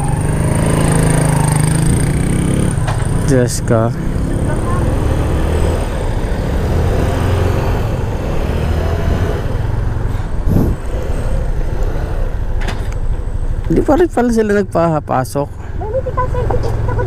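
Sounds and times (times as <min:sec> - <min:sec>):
motorcycle engine running: 0:00.0 - 0:17.0
wind rumble on microphone: 0:10.4 - 0:11.0.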